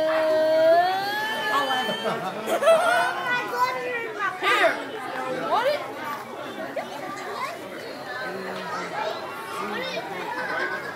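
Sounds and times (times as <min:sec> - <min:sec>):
children squealing: 0:00.0 - 0:02.3
children chattering excitedly: 0:00.0 - 0:10.9.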